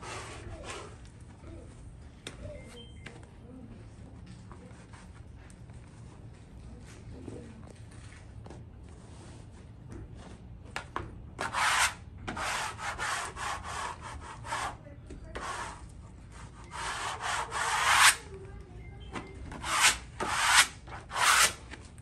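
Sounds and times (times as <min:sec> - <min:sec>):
wallpaper smoother scraping wallpaper: 0:00.0 - 0:01.0, 0:11.4 - 0:18.3, 0:19.5 - 0:21.7.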